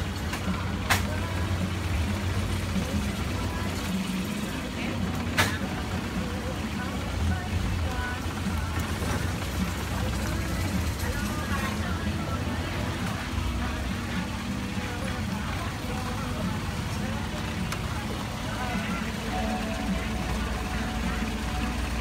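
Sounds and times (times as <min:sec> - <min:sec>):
boat engine droning: 0:00.0 - 0:22.0
people chatting: 0:00.0 - 0:22.0.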